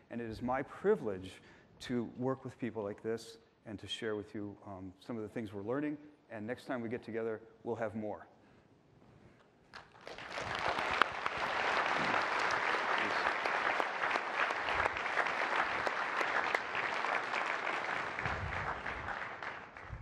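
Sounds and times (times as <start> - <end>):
audience applauding: 9.8 - 20.0.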